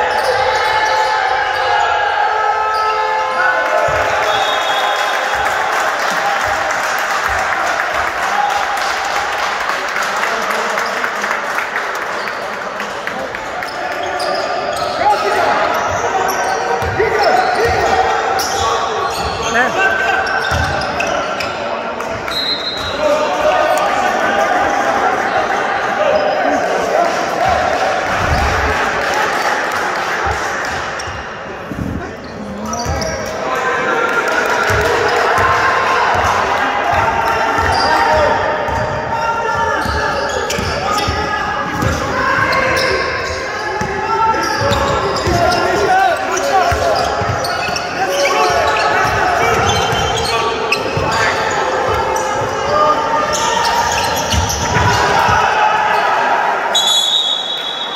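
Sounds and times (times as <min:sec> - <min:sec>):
basketball bouncing in echoing hall: 0:14.2 - 0:23.0, 0:30.2 - 0:33.4, 0:34.6 - 0:55.5.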